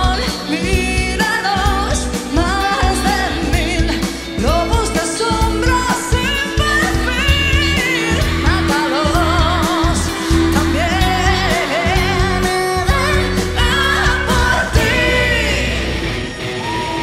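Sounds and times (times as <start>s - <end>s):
woman singing with vibrato: 0.0s - 16.4s
rock band with guitar and drums: 0.0s - 17.0s.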